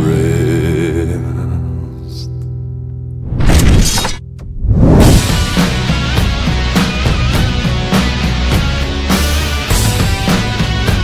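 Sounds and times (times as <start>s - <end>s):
crashing transition effect: 3.2s - 6.0s
rock music with drums: 5.0s - 11.0s.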